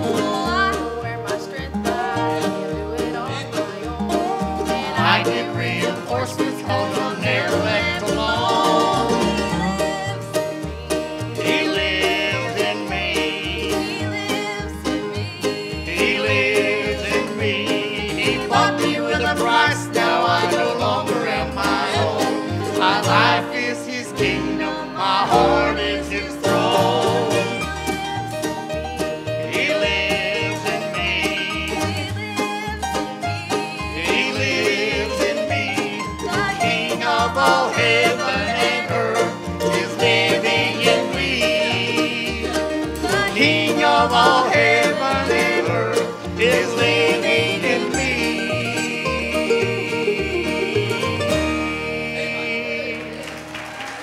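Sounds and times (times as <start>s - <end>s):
vocal trio singing gospel: 0.0s - 54.0s.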